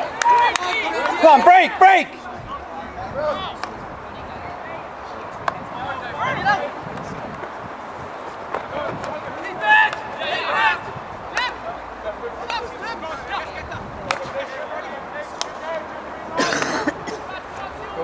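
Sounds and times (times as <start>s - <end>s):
players shouting: 0.0s - 4.2s, 8.5s - 18.0s.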